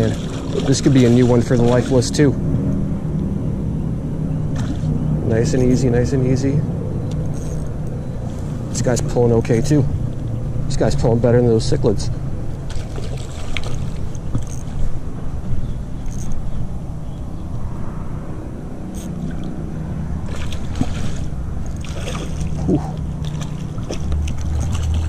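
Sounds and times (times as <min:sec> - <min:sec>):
fishing reel clicks and rustles: 0:07.1 - 0:08.0, 0:13.0 - 0:14.9, 0:16.0 - 0:16.6, 0:18.9 - 0:19.5.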